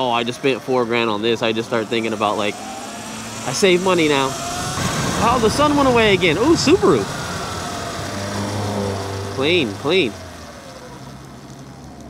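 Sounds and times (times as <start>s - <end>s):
road noise: 0.0s - 12.0s
electric motor whine: 0.8s - 12.0s.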